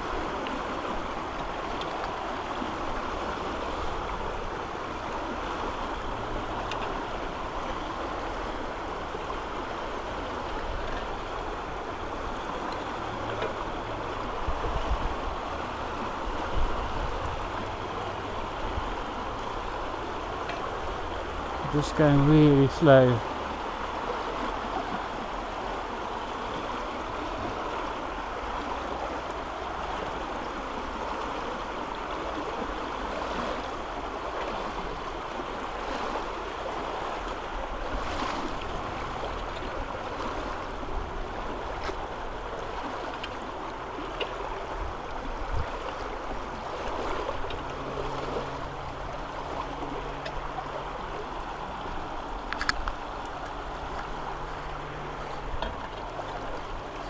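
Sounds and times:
floodwater rushing: 0:00.0 - 0:57.0.

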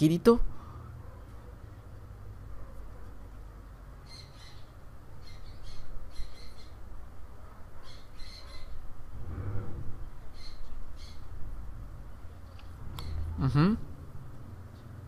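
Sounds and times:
low steady hum: 0:08.7 - 0:15.0.

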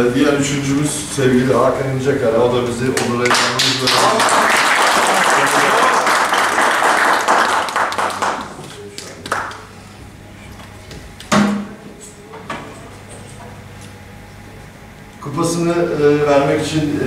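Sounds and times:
small group applauding: 0:02.9 - 0:09.8.

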